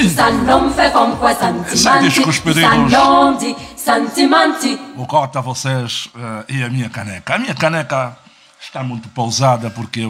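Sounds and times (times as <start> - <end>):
person singing unaccompanied: 0.0 - 5.0.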